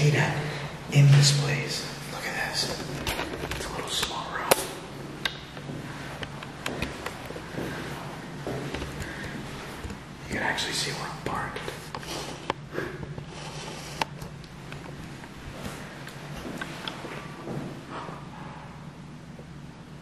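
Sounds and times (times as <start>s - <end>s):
person whispering: 0.0s - 4.9s, 10.2s - 12.4s.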